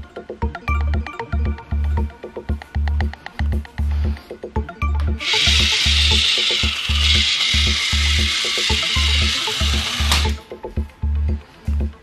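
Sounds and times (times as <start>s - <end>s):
background music with beat: 0.0s - 12.0s
toy car motor whirring: 5.2s - 10.4s
toy click: 5.2s - 10.4s.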